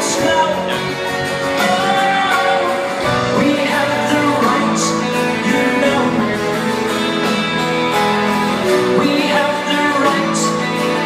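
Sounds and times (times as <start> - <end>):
live band with guitar: 0.0 - 11.0.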